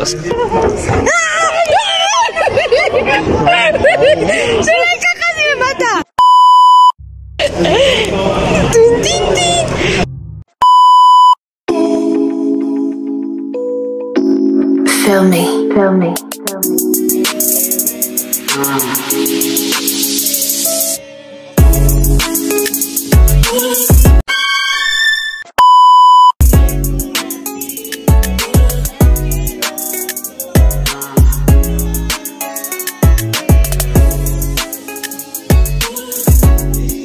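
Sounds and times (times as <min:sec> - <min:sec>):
electronic bleep tone: 0:06.2 - 0:07.0, 0:10.6 - 0:11.4, 0:25.3 - 0:26.4
music with deep beat: 0:21.6 - 0:24.2, 0:26.4 - 0:37.0
high-pitched test-tone beep: 0:25.6 - 0:26.4.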